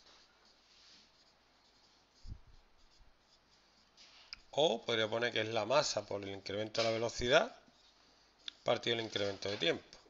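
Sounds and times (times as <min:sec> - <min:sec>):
marker pen writing on whiteboard: 0:00.0 - 0:10.0.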